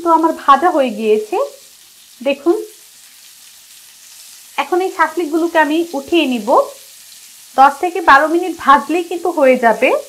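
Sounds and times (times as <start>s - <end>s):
woman speaking: 0.0s - 1.6s, 2.2s - 2.7s, 4.6s - 6.8s, 7.6s - 10.0s
food sizzling in oil: 0.0s - 10.0s.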